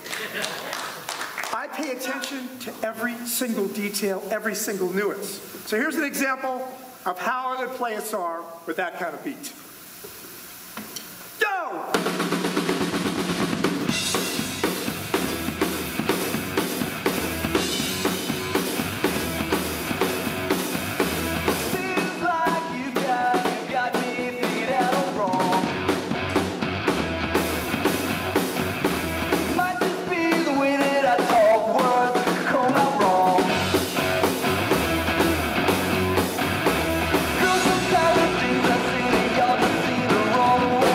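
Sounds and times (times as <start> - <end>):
rock drum beat: 11.8 - 40.9
backing track with bass line: 13.9 - 22.4, 24.6 - 29.8, 32.6 - 40.9.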